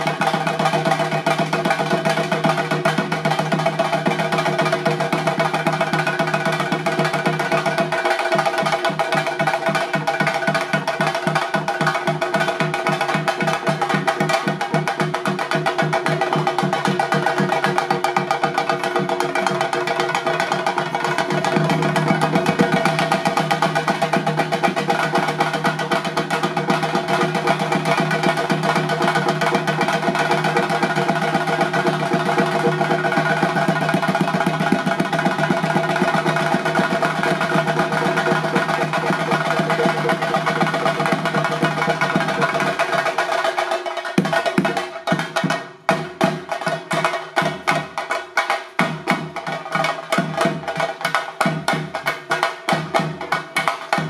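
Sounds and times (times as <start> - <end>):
drums beaten with sticks: 0.0 - 54.0.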